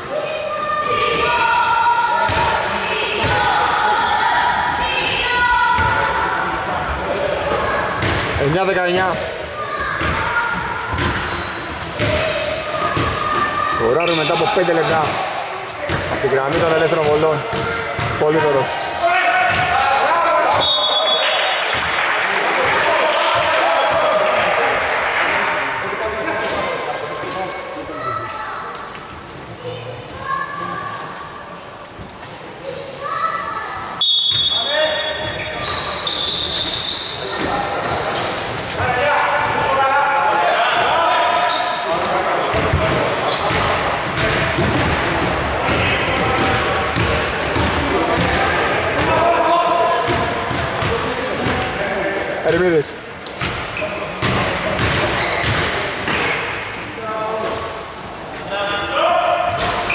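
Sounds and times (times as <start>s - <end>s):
voices: 0.0s - 31.4s
basketball bouncing on wooden court: 10.9s - 11.3s, 15.9s - 18.2s, 42.5s - 48.4s, 54.2s - 56.2s.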